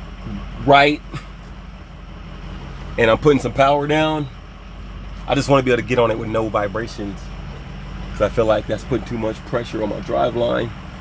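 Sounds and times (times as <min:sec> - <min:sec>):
diesel engine drone inside cab: 0:00.0 - 0:11.0
road noise: 0:00.0 - 0:11.0.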